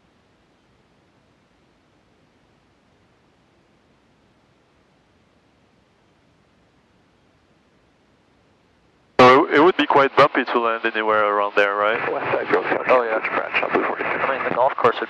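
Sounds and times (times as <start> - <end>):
man speaking over radio: 9.2 - 15.0.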